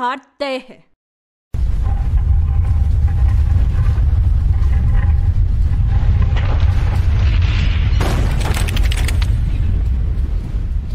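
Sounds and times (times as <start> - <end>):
low rumble: 1.6 - 10.9.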